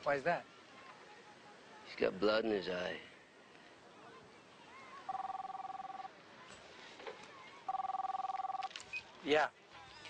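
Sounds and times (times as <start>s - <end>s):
mobile phone ringing: 5.1s - 6.1s, 7.7s - 8.8s.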